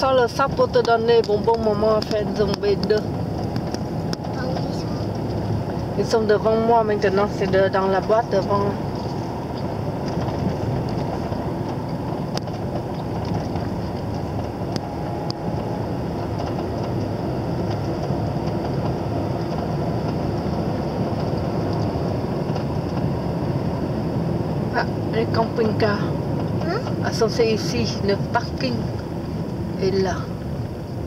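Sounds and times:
car road noise: 0.0 - 31.0.

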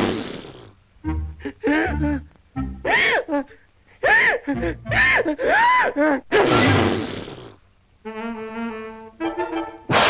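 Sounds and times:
orchestral music: 1.0 - 2.8, 9.0 - 9.9.

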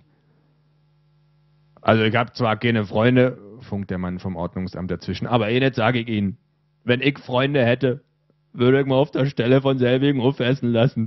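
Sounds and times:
low electrical hum: 0.0 - 11.0
man speaking: 1.8 - 8.0, 8.6 - 11.0.

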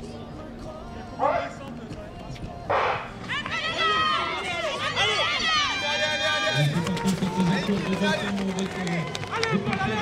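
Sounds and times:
spectators shouting: 3.3 - 8.0.

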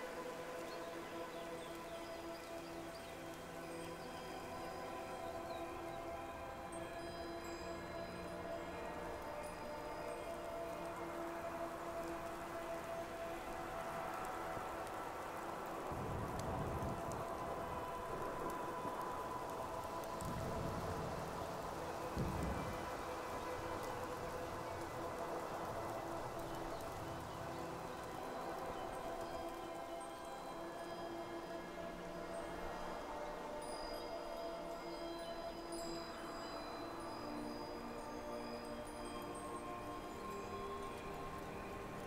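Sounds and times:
night wind hiss: 0.0 - 42.0
soft ambient music: 0.0 - 42.0.

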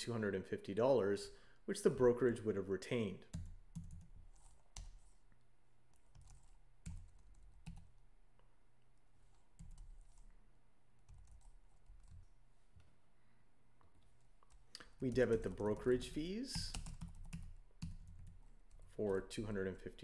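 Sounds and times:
keyboard typing: 3.3 - 5.1, 5.9 - 8.0, 9.2 - 10.3, 11.0 - 12.3, 14.4 - 18.9.

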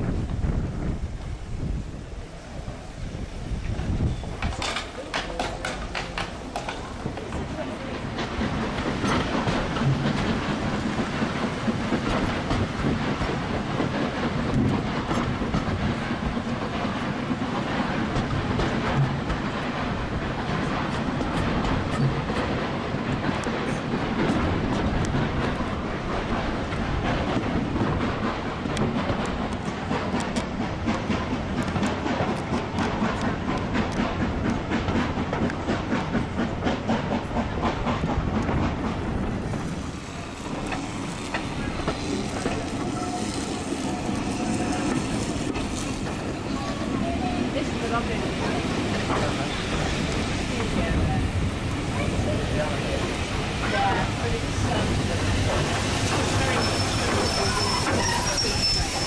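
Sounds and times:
train wheels rumbling on track: 0.0 - 59.0
clicks over rail joints: 4.4 - 46.7.

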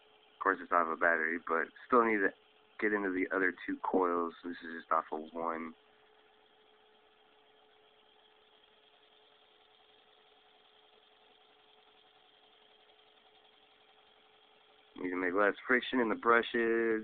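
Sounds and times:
low hiss: 0.0 - 17.0
small motor humming: 0.0 - 17.0.

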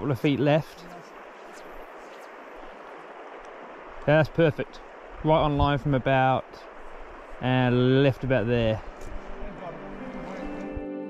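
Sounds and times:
river flowing over stones: 0.0 - 10.7.

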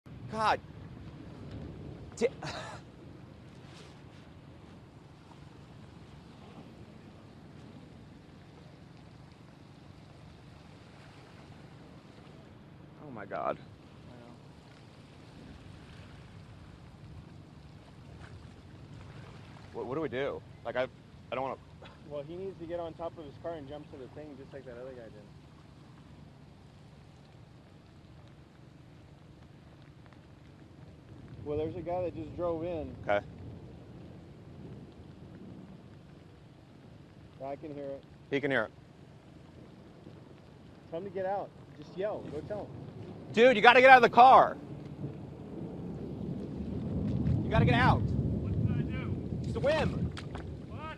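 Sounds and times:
wind: 0.0 - 50.9
flowing floodwater: 0.1 - 50.9
low rumble of thunder: 0.1 - 50.9
rain falling on water: 0.1 - 50.9.

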